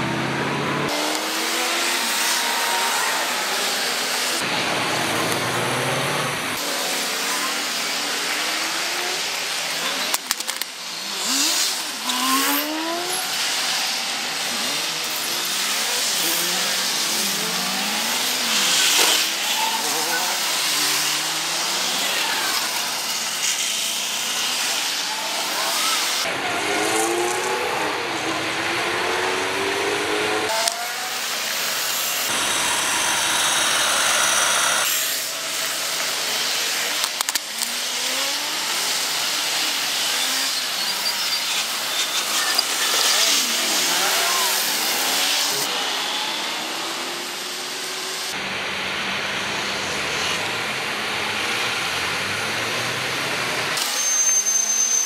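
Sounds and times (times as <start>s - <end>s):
cars accelerating past: 10.8s - 23.4s, 24.0s - 31.2s.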